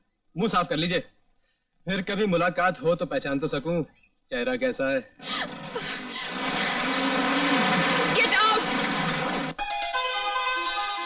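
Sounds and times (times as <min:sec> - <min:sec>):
water splashing from wheels: 0:05.3 - 0:09.6
jeep engine revving: 0:05.5 - 0:09.6.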